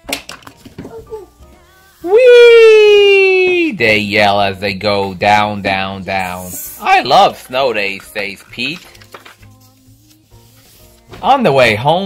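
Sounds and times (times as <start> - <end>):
book page turning: 7.8 - 11.1
paper rustle: 7.8 - 11.2.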